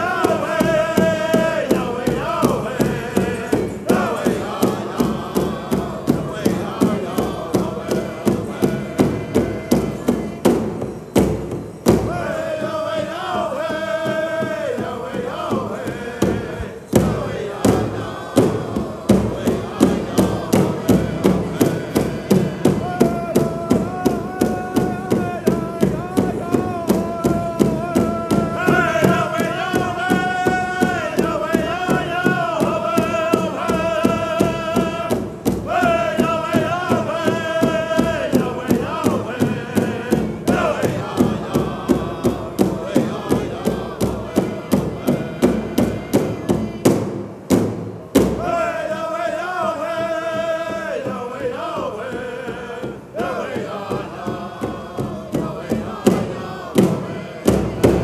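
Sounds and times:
group singing in unison: 0:00.0 - 0:58.0
large drum beating steadily: 0:00.0 - 0:58.0.

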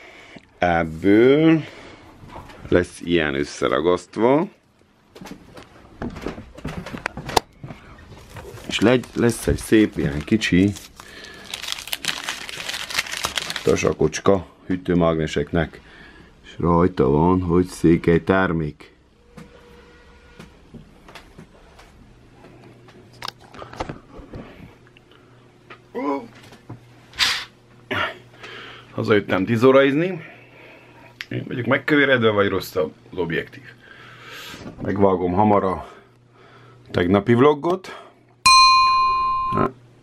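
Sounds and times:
cardboard rustling: 0:08.1 - 0:13.9.

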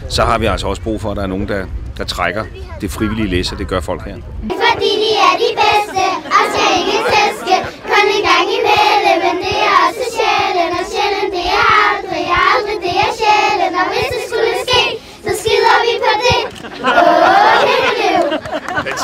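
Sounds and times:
girls singing together: 0:04.5 - 0:18.8.

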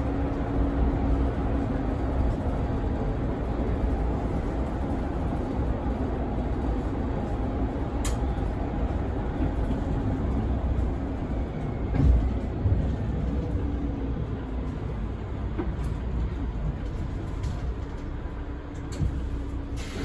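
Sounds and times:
bus engine and road rumble: 0:00.0 - 0:20.0.

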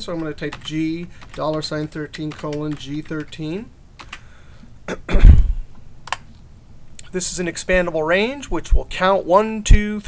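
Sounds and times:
computer keyboard typing: 0:00.0 - 0:04.2
man clearing throat: 0:04.8 - 0:05.7.

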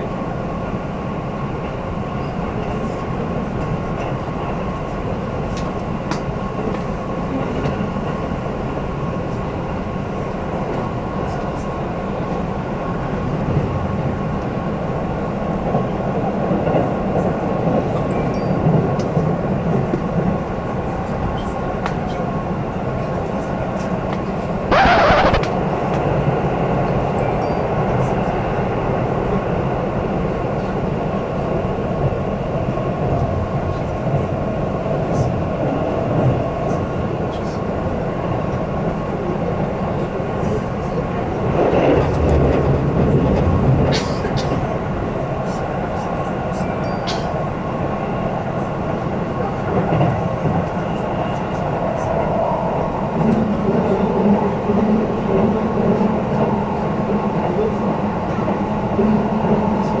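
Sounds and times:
wheels rumbling on rail: 0:00.0 - 1:00.0.

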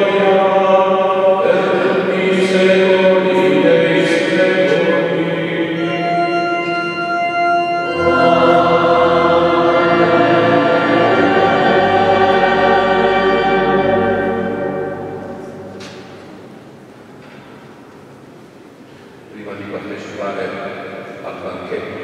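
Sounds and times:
choir singing a held chord: 0:00.0 - 0:16.2.

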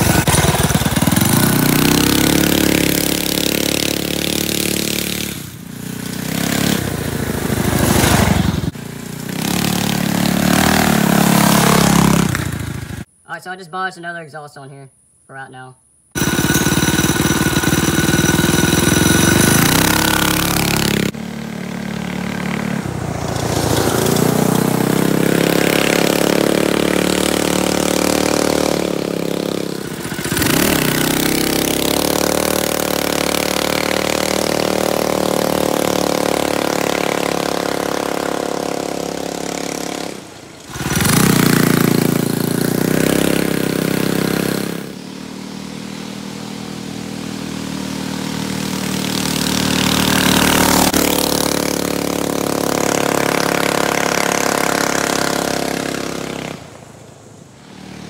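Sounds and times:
atv engine revving: 0:00.0 - 0:13.1, 0:16.2 - 0:58.0.

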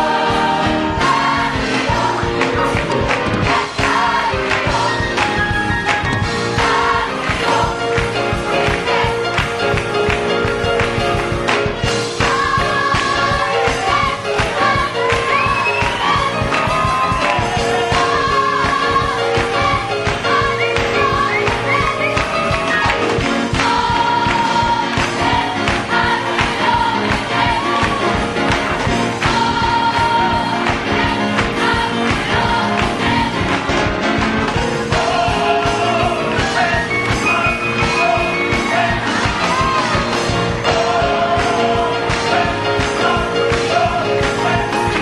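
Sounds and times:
band playing steady beat: 0:00.0 - 0:45.0
church choir singing gospel: 0:00.0 - 0:45.0.

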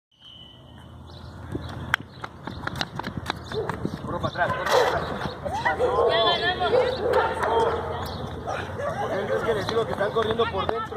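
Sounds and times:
running footsteps on concrete: 0:00.8 - 0:10.9
voices: 0:04.0 - 0:10.9.

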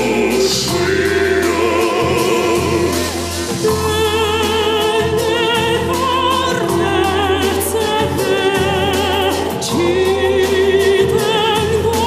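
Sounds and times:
operatic singing with vibrato: 0:00.0 - 0:12.0
sustained instrumental accompaniment: 0:00.0 - 0:12.0.

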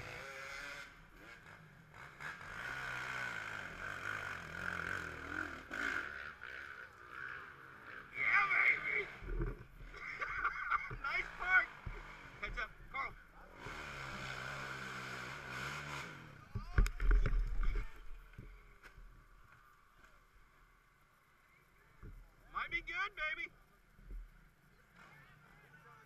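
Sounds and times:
quad engine revving: 0:00.0 - 0:12.7, 0:13.4 - 0:17.7.

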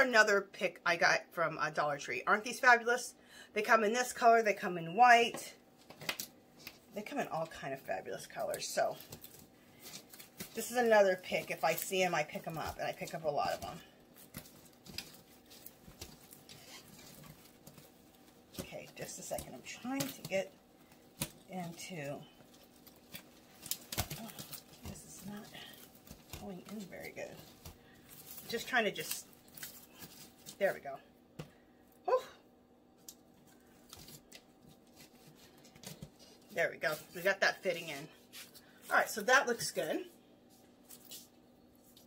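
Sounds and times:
rustling of artificial flowers: 0:05.2 - 0:42.0.

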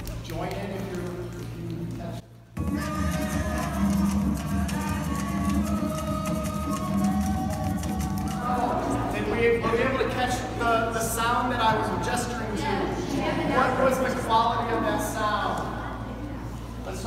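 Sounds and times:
fast percussion: 0:02.6 - 0:09.3.

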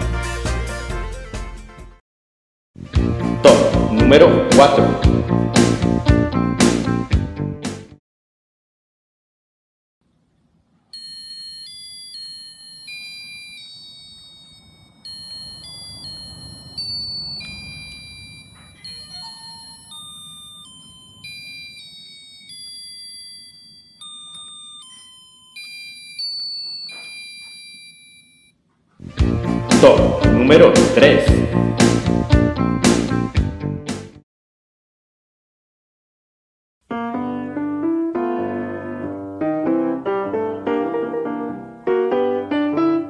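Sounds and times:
loud music: 0:00.0 - 0:02.0, 0:02.8 - 0:07.9, 0:29.2 - 0:34.1
toy electronic piano notes: 0:11.0 - 0:28.1.

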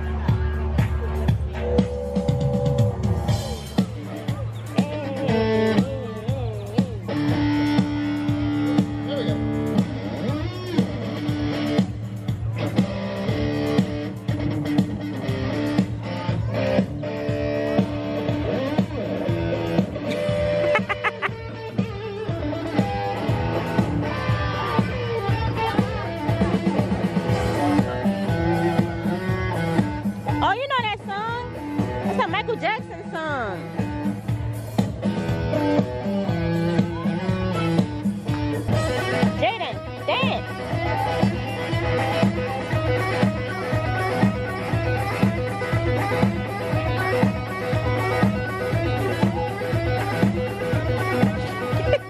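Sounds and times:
electric guitar: 0:00.0 - 0:52.0.

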